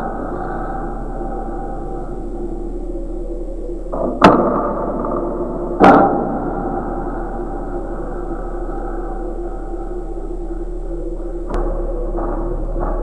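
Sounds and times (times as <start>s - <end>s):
dark drone with sustained tones: 0.0s - 13.0s.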